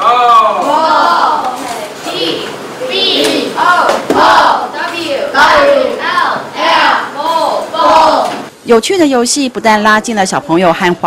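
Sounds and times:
children shouting: 0.0s - 8.5s.

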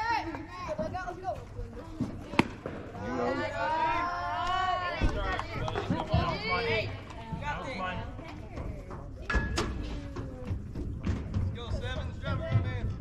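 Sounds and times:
ball popping into catcher's mitt: 2.3s - 2.9s.

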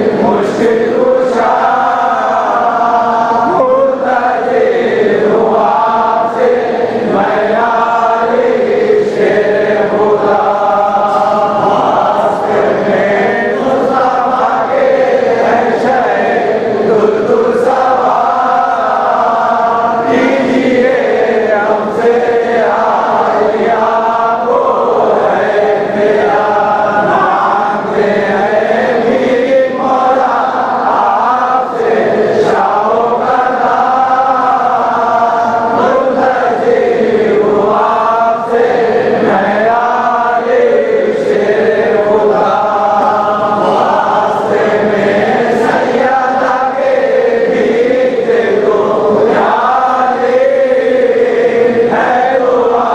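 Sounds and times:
men chanting: 0.0s - 52.9s.

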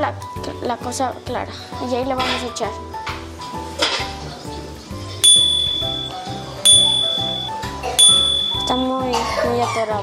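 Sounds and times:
bright bell ding: 5.2s - 9.0s.

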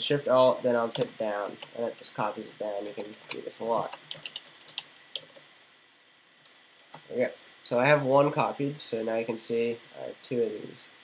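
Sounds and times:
keyboard keys clicking: 2.8s - 5.4s.

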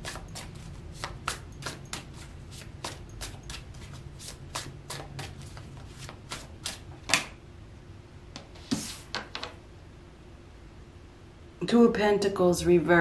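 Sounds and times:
cards being shuffled: 0.0s - 7.3s.

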